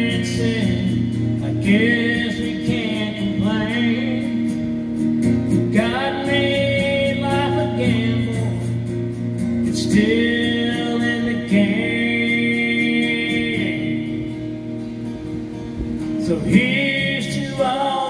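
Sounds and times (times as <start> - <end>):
man singing country song: 0.0 - 14.6, 16.1 - 18.0
strummed acoustic guitar: 0.0 - 18.0.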